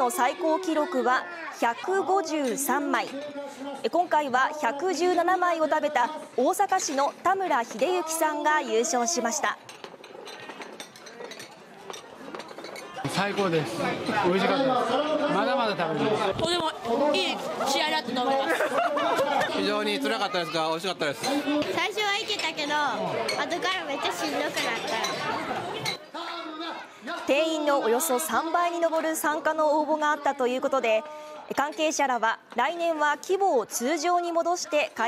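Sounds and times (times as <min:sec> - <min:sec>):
crowd chatter: 0:00.0 - 0:35.0
faint murmur of voices: 0:00.0 - 0:35.0
plates and chopsticks clinking: 0:09.6 - 0:14.2, 0:24.4 - 0:26.0
girl speaking: 0:21.8 - 0:24.8.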